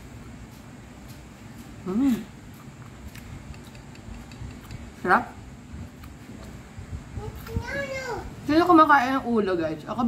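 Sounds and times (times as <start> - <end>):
low room hum: 0.0 - 10.0
wet chewing clicks: 2.5 - 5.0.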